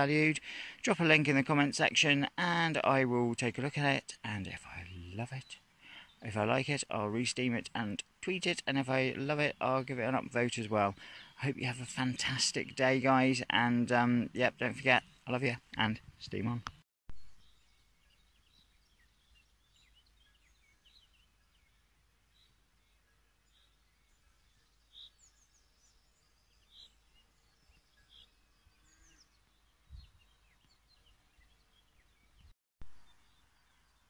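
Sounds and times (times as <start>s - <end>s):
birds chirping: 0.0s - 34.0s.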